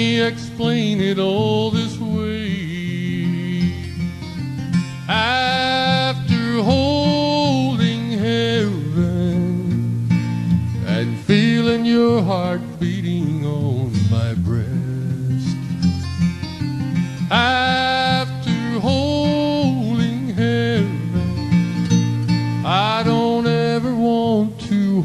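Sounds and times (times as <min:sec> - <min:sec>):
acoustic guitar strummed and picked: 0:00.0 - 0:25.0
guitar melody holding long notes: 0:00.0 - 0:25.0.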